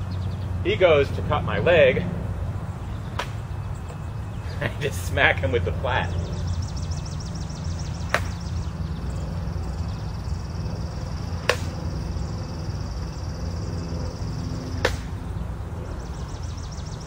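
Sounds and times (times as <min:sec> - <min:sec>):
sword blows cracking: 0:11.4 - 0:11.8, 0:14.8 - 0:15.2.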